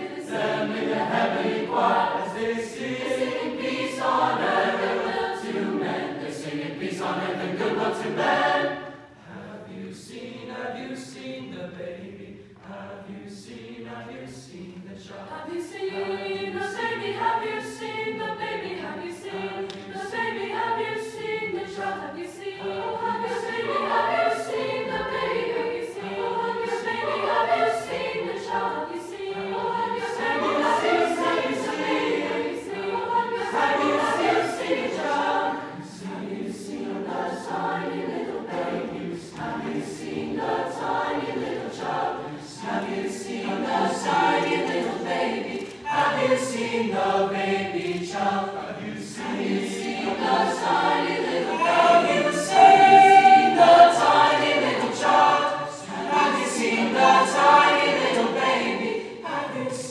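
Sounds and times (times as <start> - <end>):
mixed choir singing: 0.0 - 59.9.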